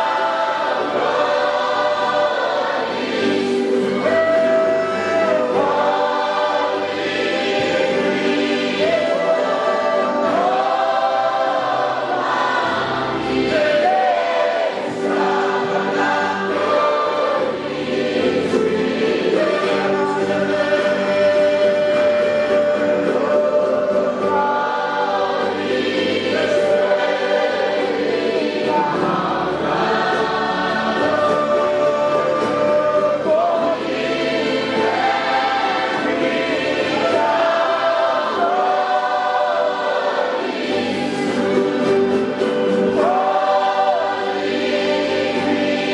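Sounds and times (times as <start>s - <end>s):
congregation singing: 0.0s - 45.9s
electronic keyboard accompaniment: 0.0s - 45.9s
man singing into microphone: 3.9s - 6.0s, 19.3s - 25.0s, 31.0s - 33.9s.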